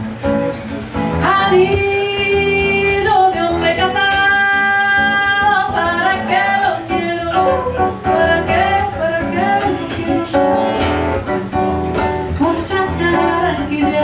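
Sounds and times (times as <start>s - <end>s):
plucked acoustic guitar: 0.0s - 14.0s.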